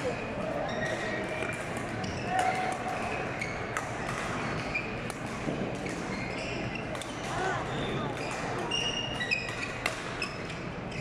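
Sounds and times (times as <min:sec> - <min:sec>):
spectators chatter: 0:00.0 - 0:11.0
shoes squeaking on floor: 0:00.1 - 0:01.2, 0:02.0 - 0:03.8, 0:04.4 - 0:05.1, 0:05.8 - 0:11.0.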